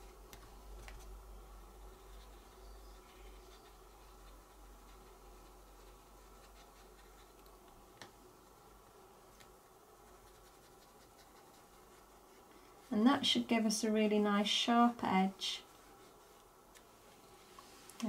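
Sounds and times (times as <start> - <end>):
stencil brush scratching on card: 0.0 - 7.5, 10.0 - 13.0, 15.6 - 17.5.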